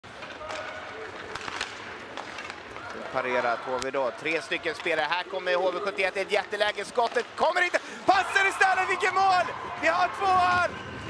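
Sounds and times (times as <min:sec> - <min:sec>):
skates scraping ice: 0:00.1 - 0:11.0
stick hitting puck: 0:00.2 - 0:03.1.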